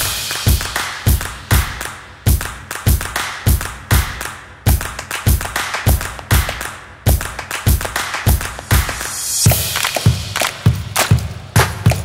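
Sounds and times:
sharp hand drum slaps: 0:00.0 - 0:12.0.

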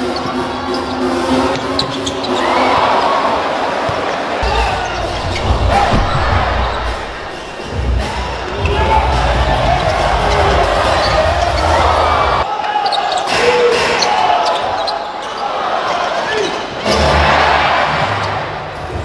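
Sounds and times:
crowd din: 0:00.0 - 0:19.0.

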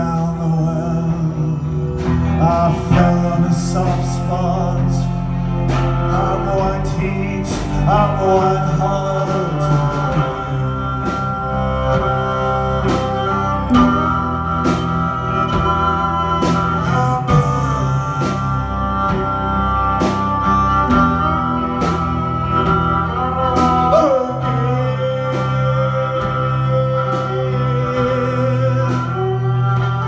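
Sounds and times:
bowed viola long notes: 0:00.0 - 0:30.0
electric guitar: 0:00.0 - 0:30.0
low bass line: 0:00.0 - 0:30.0.

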